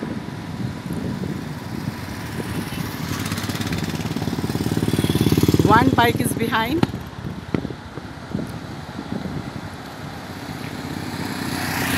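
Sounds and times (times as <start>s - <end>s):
motorcycle engines passing: 0.0s - 11.9s.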